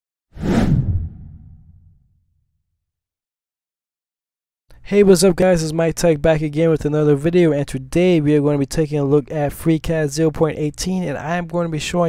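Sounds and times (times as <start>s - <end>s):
whoosh with deep rumble: 0.4s - 2.2s.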